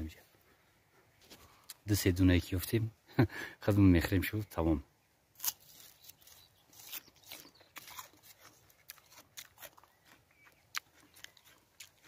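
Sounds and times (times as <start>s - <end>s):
soft crunching chewing: 0.2s - 1.9s, 5.4s - 12.0s.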